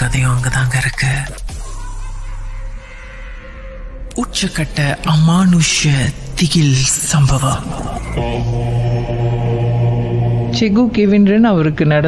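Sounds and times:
deep chant-like drone: 0:05.3 - 0:11.5.

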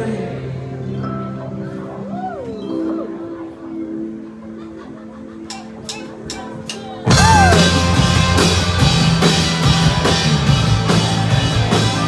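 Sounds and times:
live rock band playing: 0:05.5 - 0:12.0.

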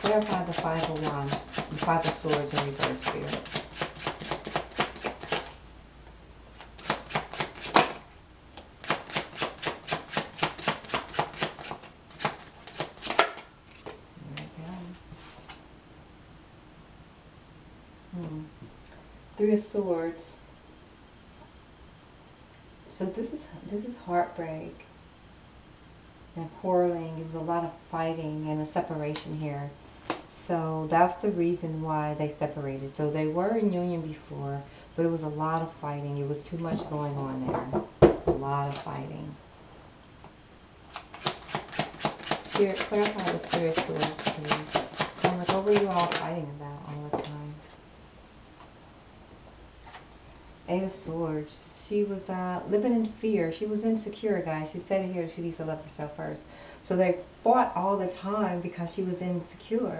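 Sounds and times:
cards being shuffled by hand: 0:00.0 - 0:05.6, 0:06.5 - 0:08.0, 0:08.6 - 0:14.5, 0:40.9 - 0:46.3.

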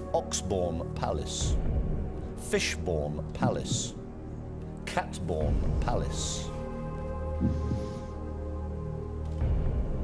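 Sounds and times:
low sustained music drone: 0:00.0 - 0:10.0.

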